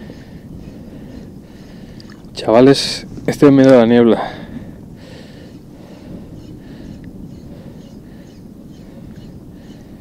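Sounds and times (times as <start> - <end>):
wind rumbling on microphone: 0.0 - 10.0
small waves lapping: 1.4 - 2.4.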